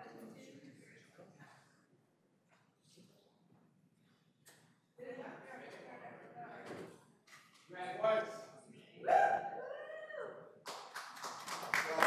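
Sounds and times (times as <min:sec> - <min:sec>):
clapping and cheering: 0:10.6 - 0:12.0.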